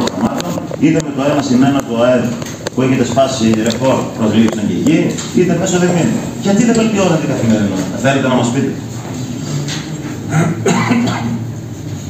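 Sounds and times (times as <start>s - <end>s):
person coughing: 10.2s - 11.5s
person clearing throat: 10.2s - 11.6s.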